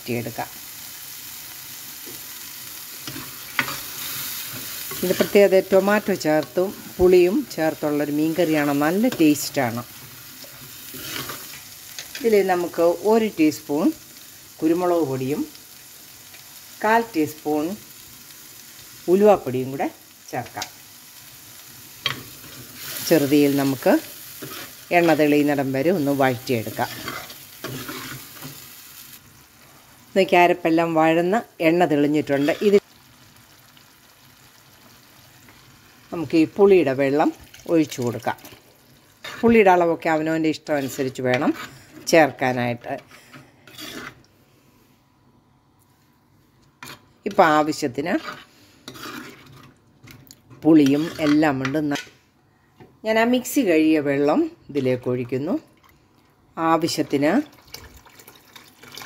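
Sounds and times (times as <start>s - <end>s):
paste sizzling in oil: 0.0s - 30.6s, 31.8s - 44.3s, 46.8s - 49.8s, 50.6s - 52.1s
metal spoon stirring: 26.7s - 28.6s, 43.7s - 44.2s, 48.2s - 49.8s, 50.5s - 52.1s.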